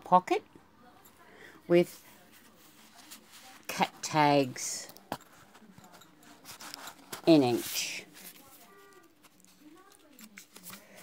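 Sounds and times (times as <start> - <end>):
paper rustling: 5.3 - 11.0.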